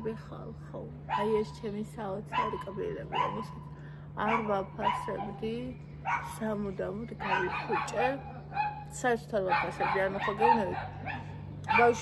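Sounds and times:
woman talking: 0:00.0 - 0:11.0, 0:11.7 - 0:12.0
steady low hum: 0:00.0 - 0:12.0.

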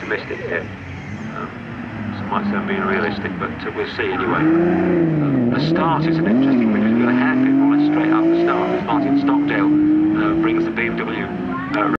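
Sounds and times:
rally car engine accelerating: 0:00.1 - 0:12.0.

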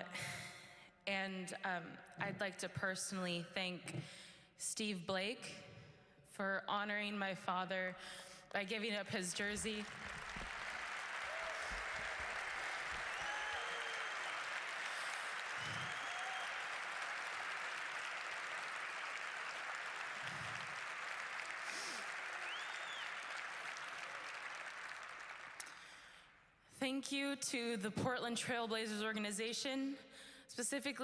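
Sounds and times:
audience applauding: 0:09.4 - 0:26.0.

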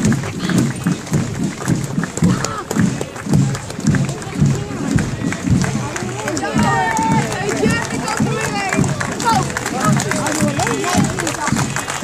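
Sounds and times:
parade band march music: 0:00.0 - 0:12.0
people talking nearby: 0:00.0 - 0:12.0.

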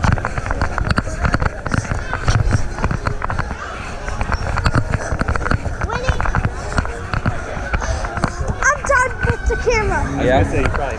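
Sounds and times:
people chattering: 0:00.0 - 0:10.9.

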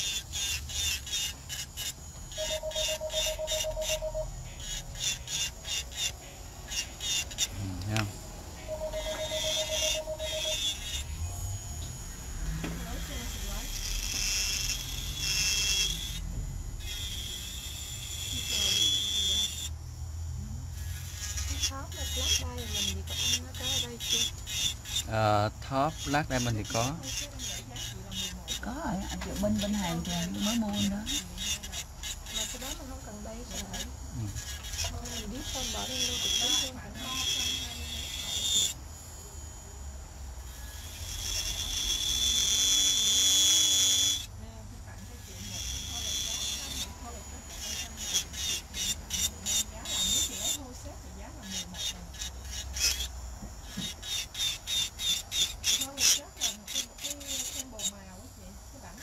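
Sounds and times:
electric nail drill whining: 0:00.0 - 0:59.0.

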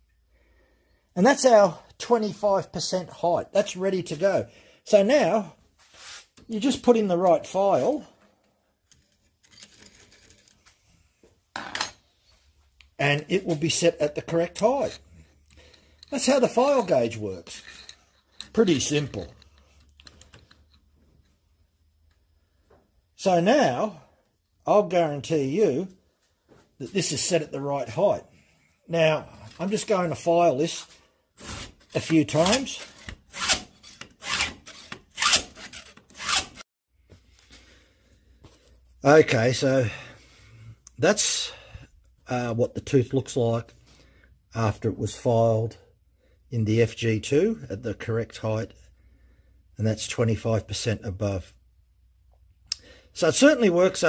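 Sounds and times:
file scraping saw chain tooth: 0:08.9 - 0:10.6, 0:14.4 - 0:20.8, 0:31.5 - 0:36.6
file rubbing against metal guide: 0:32.4 - 0:36.6.

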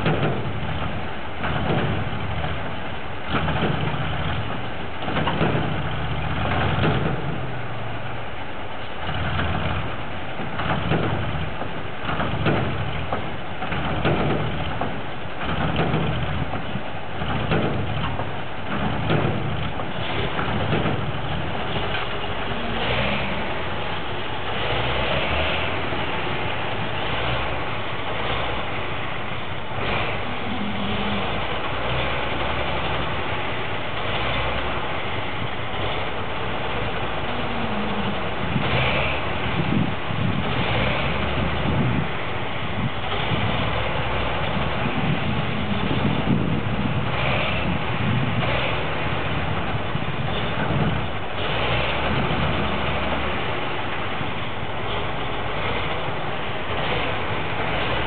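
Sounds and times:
heavy diesel engines running: 0:00.0 - 0:58.0.

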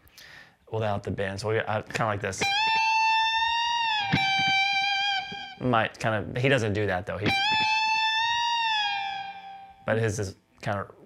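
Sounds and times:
electric guitar bent note: 0:02.4 - 0:05.7, 0:07.2 - 0:09.8.

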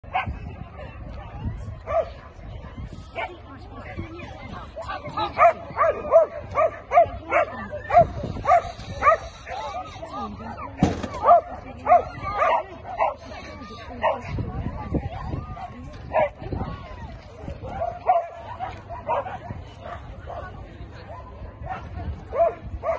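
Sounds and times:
people talking: 0:00.0 - 0:22.9
dog barking: 0:01.9 - 0:02.3, 0:05.4 - 0:09.6, 0:11.2 - 0:13.2, 0:17.6 - 0:20.5, 0:21.6 - 0:22.9.

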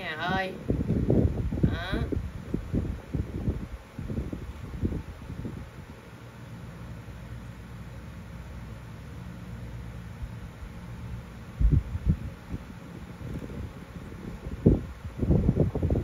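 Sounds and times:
background hum and hiss: 0:00.0 - 0:16.0
soft low thumps: 0:11.6 - 0:16.0.

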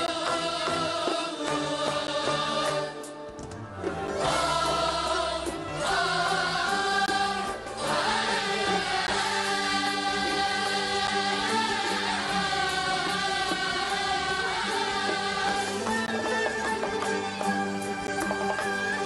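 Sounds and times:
voices singing together: 0:00.0 - 0:03.1, 0:04.1 - 0:16.5
instrumental ensemble: 0:00.0 - 0:19.0.

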